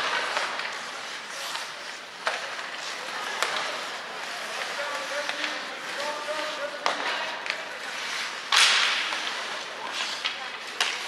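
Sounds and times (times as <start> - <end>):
hockey sticks clacking puck: 0.0 - 11.0
skate scraping on ice: 0.0 - 11.0.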